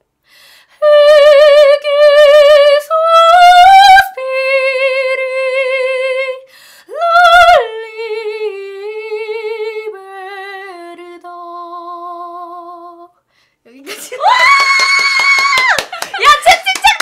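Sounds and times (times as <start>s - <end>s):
woman singing unaccompanied: 0.8s - 13.2s.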